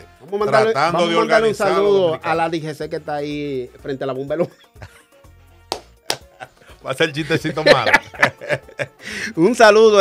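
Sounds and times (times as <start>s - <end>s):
sharp hand claps: 5.6s - 6.5s.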